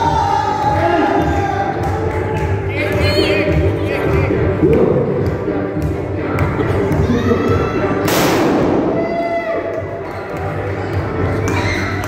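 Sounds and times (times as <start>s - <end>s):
confetti shooter burst: 8.1s - 8.9s.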